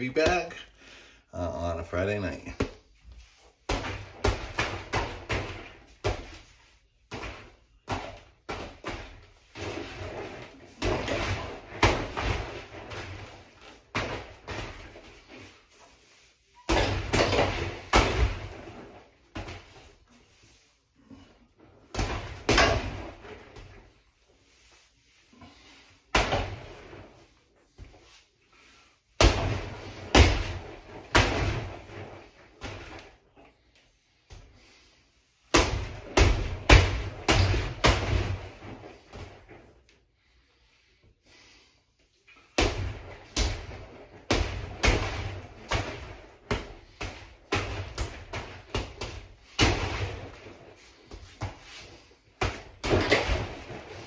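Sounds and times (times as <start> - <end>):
gloves punching heavy bag: 3.6 - 6.5, 7.1 - 15.3, 16.6 - 19.8, 29.2 - 33.1, 35.5 - 39.4, 42.6 - 54.0.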